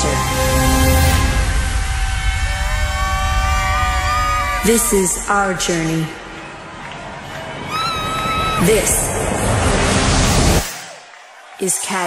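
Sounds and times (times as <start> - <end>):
deep rumbling drone: 0.0 - 6.4, 7.6 - 10.6.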